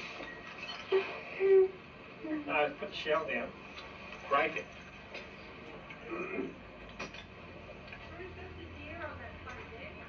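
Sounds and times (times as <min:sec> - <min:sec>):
steady low hum: 0:00.0 - 0:10.0
faint voices through tv speaker: 0:07.9 - 0:10.0.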